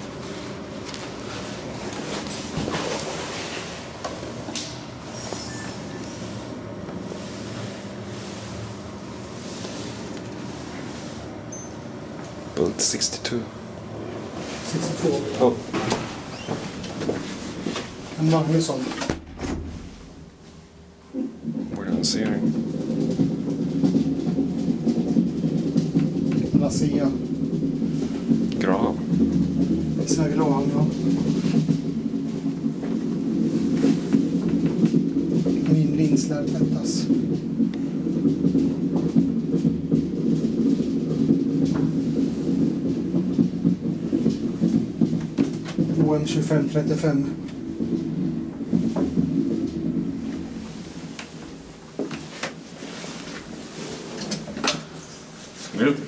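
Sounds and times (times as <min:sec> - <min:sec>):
elevator low rumbling hum: 0:00.0 - 0:56.0.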